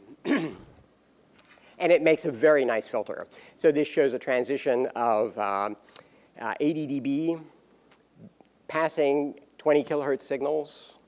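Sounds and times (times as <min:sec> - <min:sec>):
man clearing his throat: 0:00.1 - 0:00.8
man speaking: 0:01.8 - 0:07.6, 0:08.2 - 0:11.0.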